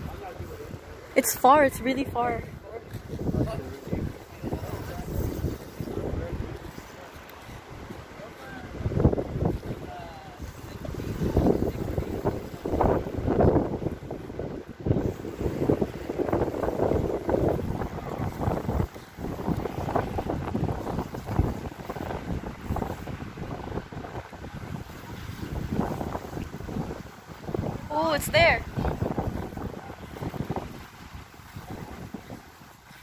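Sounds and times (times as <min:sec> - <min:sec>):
boat on open water: 0:00.0 - 0:33.0
wind gusting on microphone: 0:00.0 - 0:33.0.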